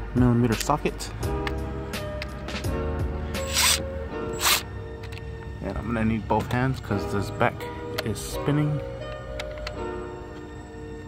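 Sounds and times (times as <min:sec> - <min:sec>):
background music: 0:00.0 - 0:11.0
cordless drill spinning: 0:03.4 - 0:04.6.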